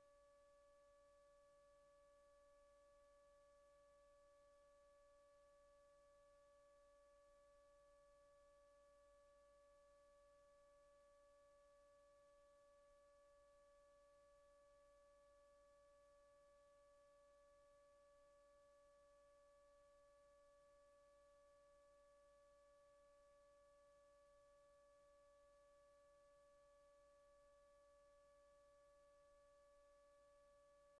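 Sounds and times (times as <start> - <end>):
faint steady electronic tone: 0.0 - 31.0.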